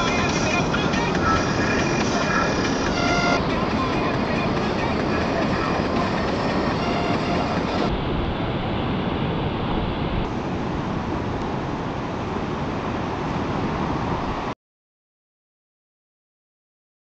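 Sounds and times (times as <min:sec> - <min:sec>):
ocean surf breaking: 0:00.0 - 0:14.6.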